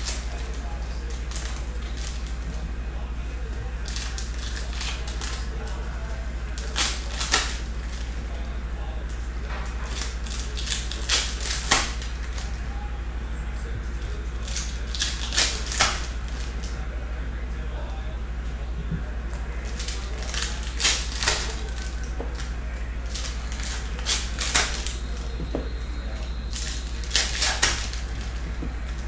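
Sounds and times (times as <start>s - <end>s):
trading cards snapping: 0.0s - 2.6s, 3.5s - 8.2s, 9.5s - 12.6s, 14.4s - 16.8s, 19.6s - 29.0s
steady low hum: 0.0s - 29.0s.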